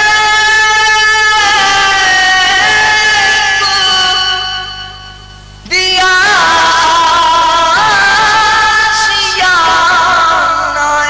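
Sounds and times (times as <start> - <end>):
man singing long note: 0.0 - 5.1.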